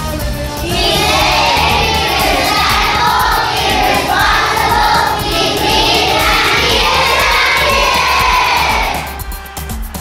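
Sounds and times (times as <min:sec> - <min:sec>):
music with steady beat: 0:00.0 - 0:10.0
children singing together: 0:00.5 - 0:09.2.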